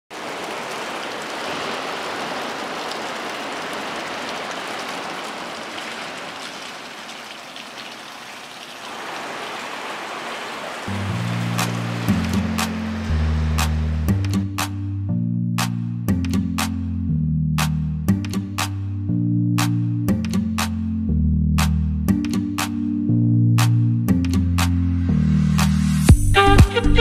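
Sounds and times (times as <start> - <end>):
water-like rushing noise: 0.1 - 14.3
music with deep bass line: 11.2 - 27.0.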